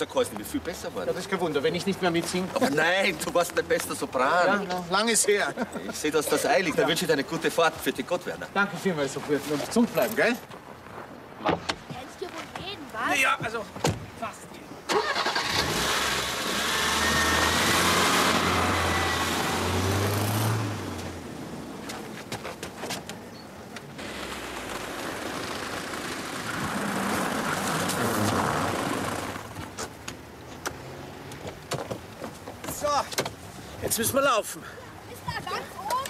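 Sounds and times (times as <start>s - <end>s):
car engine starting and revving: 14.9s - 21.8s, 24.0s - 29.7s
car driving on snowy road: 15.0s - 22.2s, 24.0s - 29.7s.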